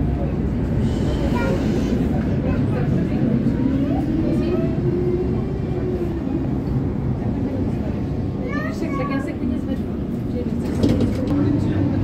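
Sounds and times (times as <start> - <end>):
tram rumbling on rails: 0.0 - 12.0.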